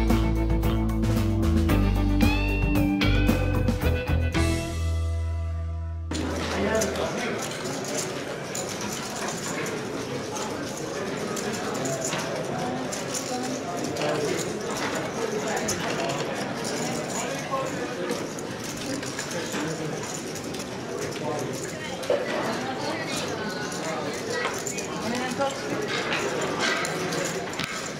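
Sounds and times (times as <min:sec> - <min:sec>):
many voices chattering: 0:06.1 - 0:27.9.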